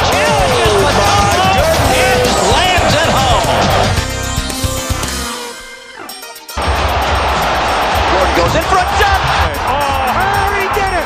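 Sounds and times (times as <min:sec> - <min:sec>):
voices shouting and calling: 0:00.0 - 0:04.0
dense crowd noise: 0:00.0 - 0:04.1, 0:06.6 - 0:11.0
background music: 0:00.0 - 0:11.0.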